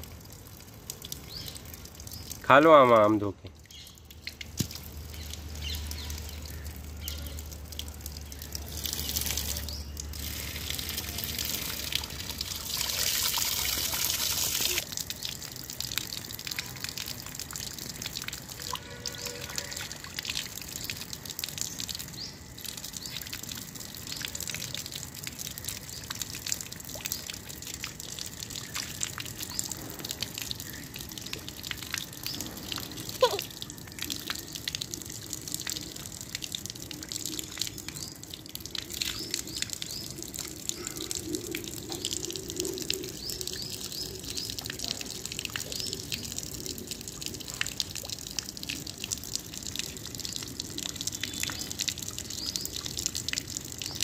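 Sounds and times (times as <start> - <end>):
water splashing on stone floor: 0.0 - 54.0
water running from tap: 0.8 - 54.0.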